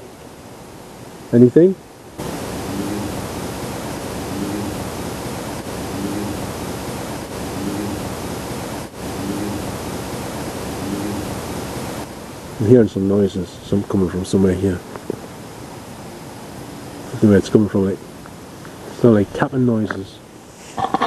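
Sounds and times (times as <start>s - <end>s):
amplified background hiss: 0.0s - 21.0s
faint low murmur: 0.0s - 21.0s.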